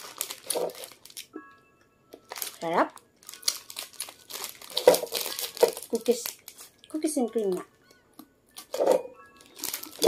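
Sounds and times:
plastic snack bag crinkling: 0.0 - 1.4, 2.2 - 10.0.

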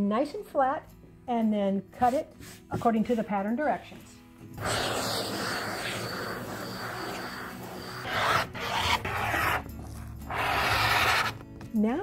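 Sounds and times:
fabric rubbed on a table: 2.0 - 3.1, 4.6 - 11.4.

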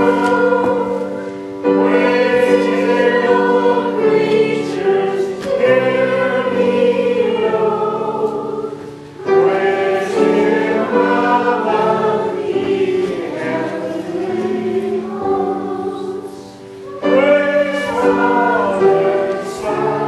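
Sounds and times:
church choir singing: 0.0 - 20.0.

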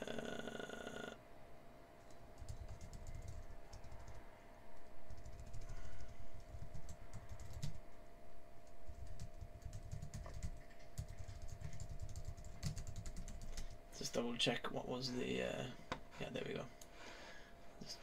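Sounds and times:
faint steady hum: 0.0 - 18.0
typing on computer keyboard: 2.4 - 4.2, 5.1 - 7.8, 8.9 - 13.7.

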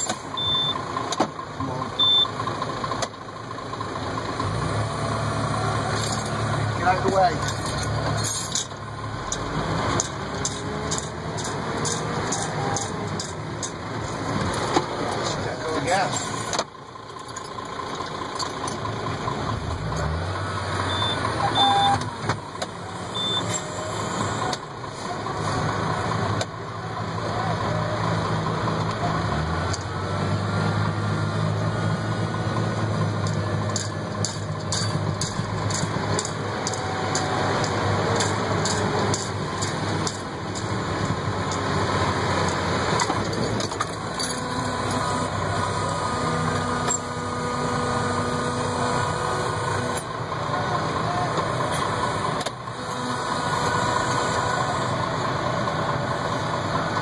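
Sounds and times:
tractor engine running: 0.0 - 57.0.

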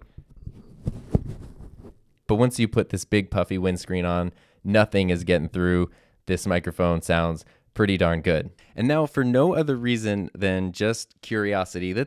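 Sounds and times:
foam rubbing against microphone: 0.4 - 2.0.

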